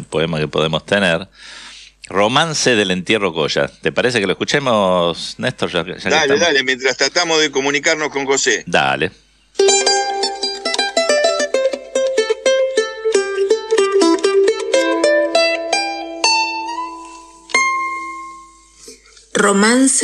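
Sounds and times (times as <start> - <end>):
plucked string instrument: 9.6 - 18.8.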